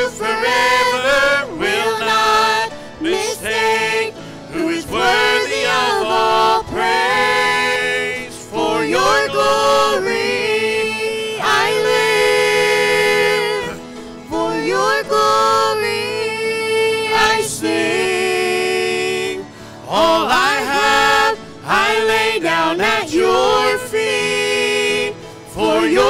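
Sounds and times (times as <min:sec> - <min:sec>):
group singing in harmony: 0:00.0 - 0:26.0.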